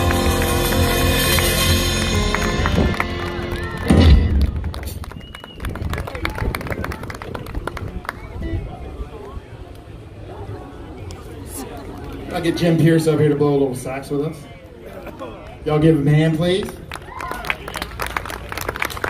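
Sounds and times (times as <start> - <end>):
scattered applause: 0.0 - 9.4, 16.6 - 19.0
crowd voices: 0.0 - 19.0.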